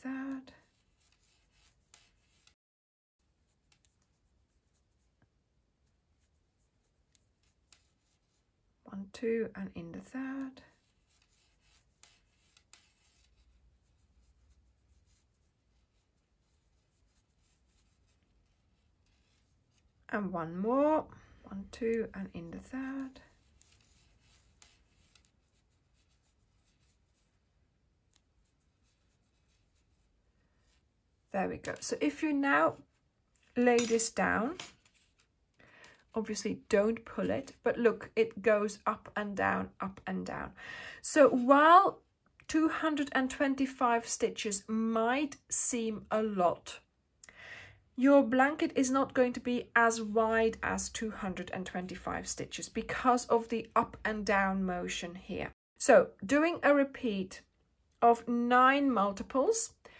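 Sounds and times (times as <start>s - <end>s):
crochet hook drawing yarn: 0.0s - 2.6s, 3.2s - 8.6s, 10.2s - 35.3s.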